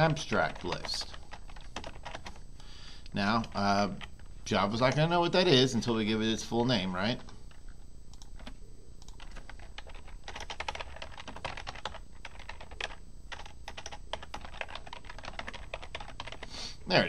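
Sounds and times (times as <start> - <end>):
keyboard keys clicking: 7.2 - 16.4.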